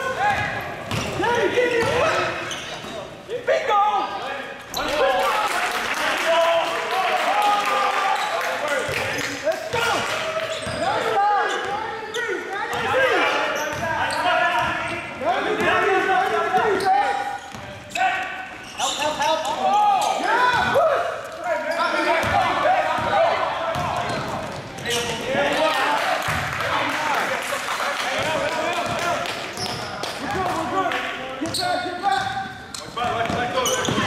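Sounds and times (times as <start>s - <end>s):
voices shouting and talking: 0.0s - 34.0s
basketball bouncing on a court: 0.4s - 1.2s, 32.2s - 34.0s.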